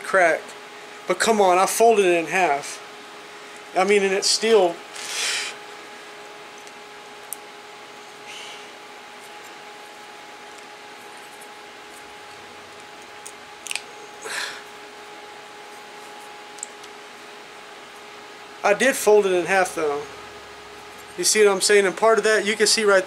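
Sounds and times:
steady background hum: 0:00.0 - 0:23.0.

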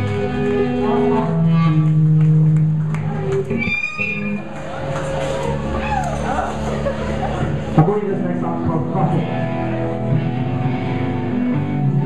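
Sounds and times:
electric guitar and bass: 0:00.0 - 0:12.0.

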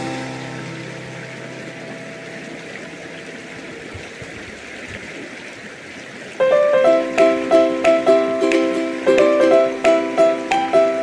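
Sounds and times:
background music: 0:00.0 - 0:01.7, 0:06.4 - 0:11.0
plucked ukulele-like music: 0:00.0 - 0:01.8, 0:06.5 - 0:11.0
stream rushing over stones: 0:00.0 - 0:11.0.

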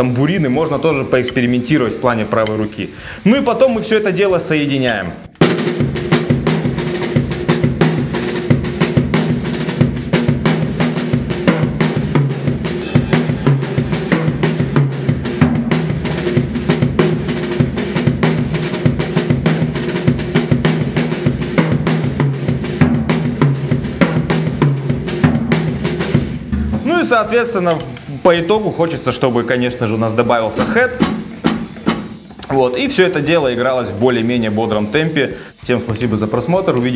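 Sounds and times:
acoustic drum kit groove: 0:05.4 - 0:29.1, 0:30.5 - 0:36.9.

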